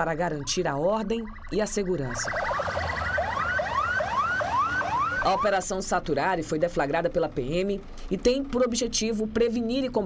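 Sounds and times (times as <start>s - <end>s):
police siren yelping: 0.0s - 5.8s.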